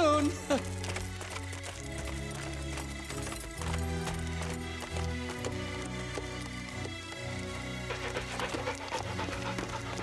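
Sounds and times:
background music: 0:00.0 - 0:10.0
dog panting rapidly: 0:07.5 - 0:10.0.

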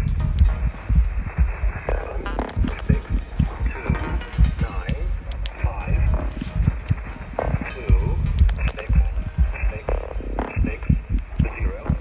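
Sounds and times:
experimental electronic music: 0:00.0 - 0:12.0
irregular low thumps: 0:00.0 - 0:12.0.

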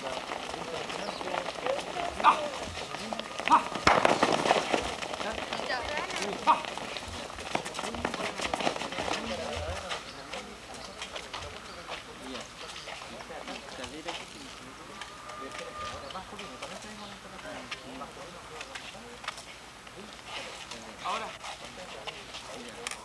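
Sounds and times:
players' voices and calls: 0:00.0 - 0:23.0.

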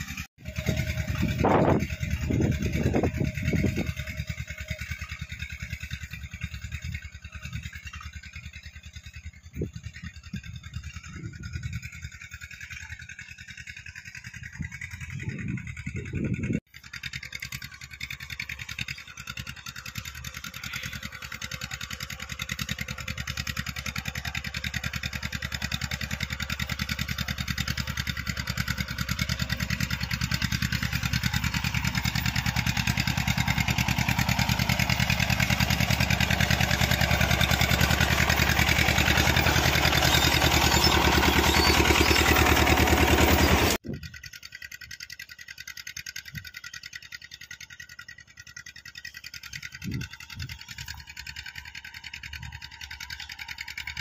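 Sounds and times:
distant engine: 0:00.0 - 0:54.0
tractor diesel engine running: 0:00.0 - 0:54.0.

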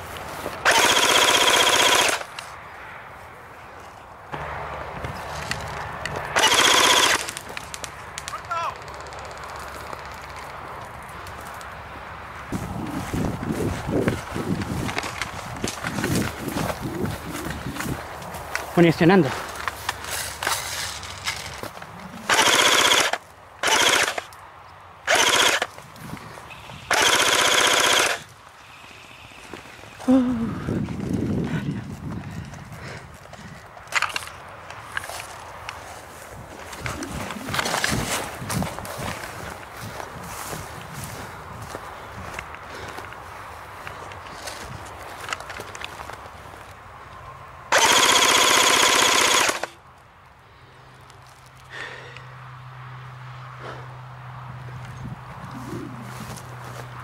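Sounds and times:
airsoft rifle full-auto bursts: 0:00.6 - 0:02.3, 0:06.4 - 0:07.4, 0:22.3 - 0:24.3, 0:25.1 - 0:25.7, 0:26.6 - 0:28.3, 0:47.7 - 0:49.8.

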